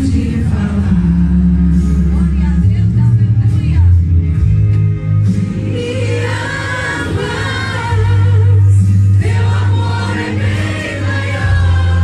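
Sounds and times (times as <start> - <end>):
voices singing together: 0.0 - 1.5, 5.5 - 12.0
sustained bass notes: 0.0 - 12.0.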